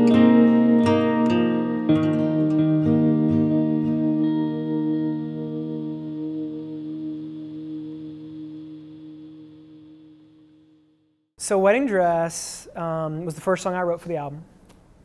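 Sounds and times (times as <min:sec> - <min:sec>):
acoustic guitar chord ringing: 0:00.0 - 0:11.2.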